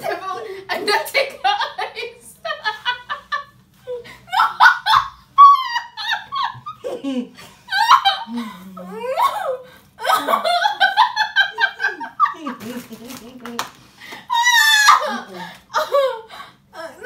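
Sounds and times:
women laughing hard: 1.3s - 12.6s.

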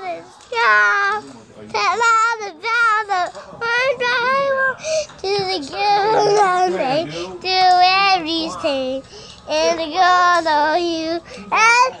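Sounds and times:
child singing: 1.8s - 12.0s.

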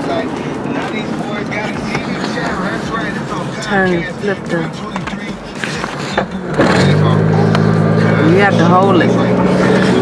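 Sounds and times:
car road and engine noise: 0.0s - 10.0s
indistinct voices talking: 0.0s - 10.0s.

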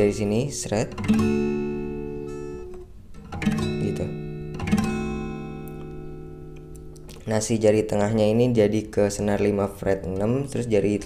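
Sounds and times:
acoustic guitar chord ringing: 0.0s - 9.8s.

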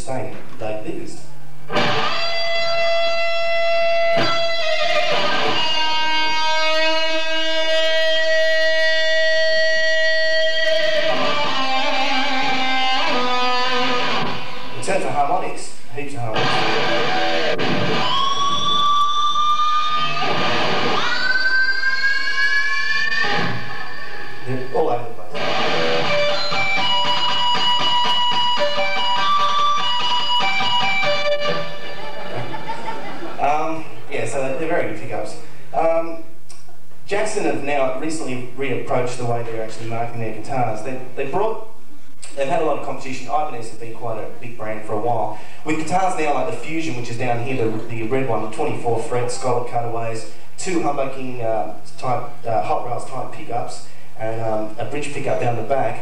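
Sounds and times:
electric guitar lead with string bends: 1.7s - 14.8s, 16.3s - 32.9s.

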